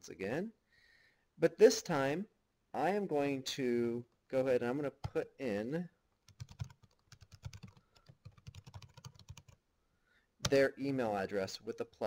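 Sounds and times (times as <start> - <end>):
computer keyboard typing: 6.2 - 9.6.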